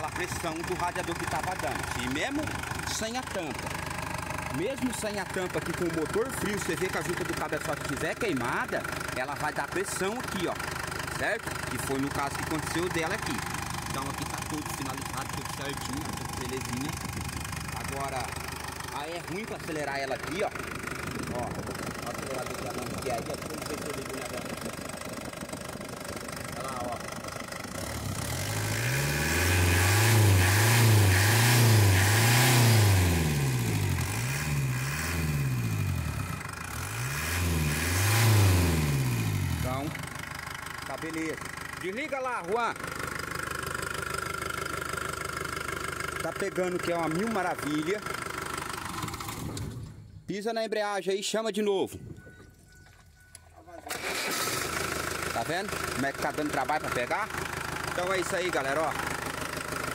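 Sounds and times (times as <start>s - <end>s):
diesel engine revving: 0.0s - 50.0s, 53.9s - 59.9s.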